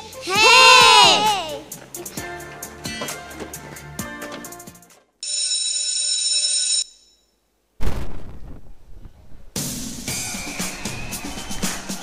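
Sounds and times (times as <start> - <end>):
high-pitched ringing bell tone: 5.2 - 7.4.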